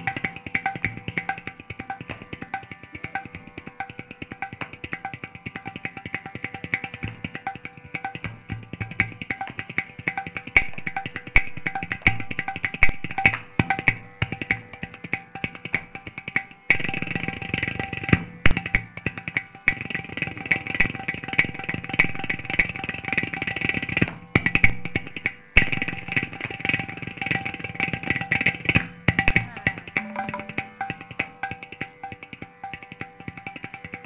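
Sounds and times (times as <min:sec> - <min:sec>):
hand drum and clay pot percussion: 0:00.0 - 0:34.0.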